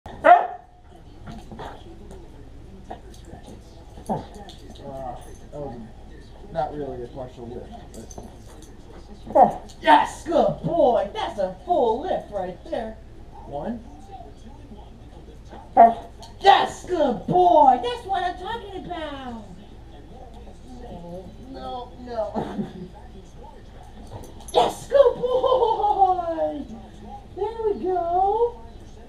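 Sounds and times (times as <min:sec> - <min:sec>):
dog barking: 0:00.2 - 0:00.7.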